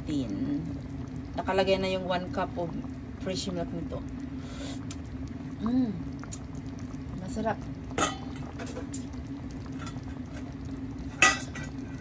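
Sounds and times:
low hum: 0.0s - 12.0s
metal utensil clinking on pan: 11.1s - 11.8s.

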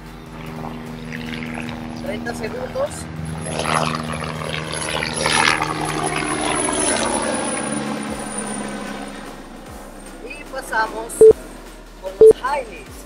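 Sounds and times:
propeller airplane engine drone: 0.0s - 12.3s.

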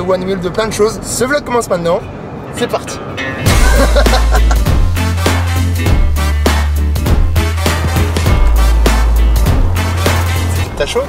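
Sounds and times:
music with heavy bass and beat: 3.5s - 10.7s.

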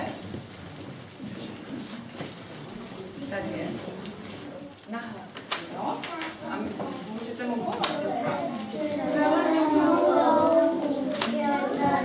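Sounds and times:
soft rustling and handling noises: 0.0s - 12.0s
murmur of voices: 1.2s - 12.0s.

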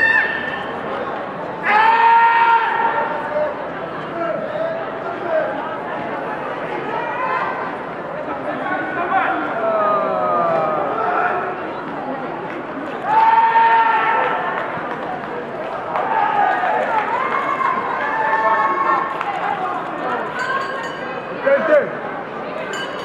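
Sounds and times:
arena crowd chatter: 0.0s - 23.0s
loud drawn-out shout: 1.6s - 3.2s, 9.0s - 11.6s, 13.0s - 14.6s
voices calling out: 8.7s - 11.7s.

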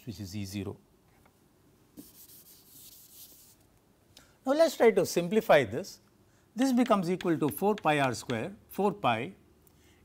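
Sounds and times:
duster rubbing on chalkboard: 2.0s - 3.6s.

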